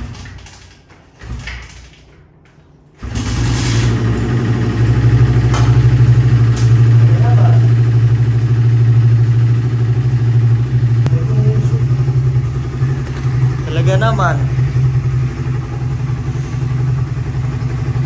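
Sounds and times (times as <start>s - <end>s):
motorcycle kick-start: 3.0s - 7.1s
motorcycle engine idling: 3.0s - 18.0s.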